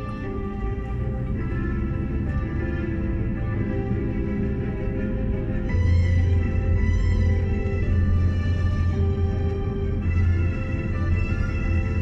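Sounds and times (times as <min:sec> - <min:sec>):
car rumbling on road: 0:00.0 - 0:12.0
classical music from car radio: 0:00.0 - 0:12.0.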